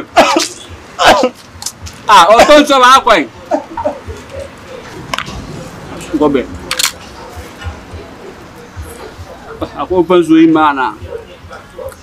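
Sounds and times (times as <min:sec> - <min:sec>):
faint music with low beat: 0:00.5 - 0:12.0.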